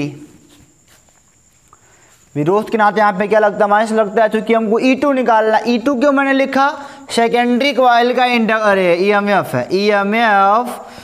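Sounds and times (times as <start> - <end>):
faint footsteps: 0.0 - 2.5.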